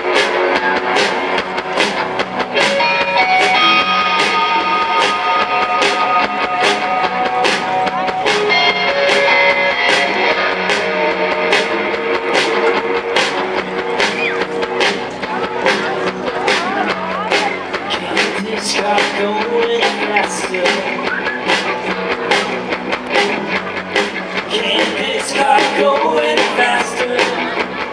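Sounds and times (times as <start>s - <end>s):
lead guitar long held notes: 0.0s - 27.9s
live rock band playing: 0.0s - 27.9s.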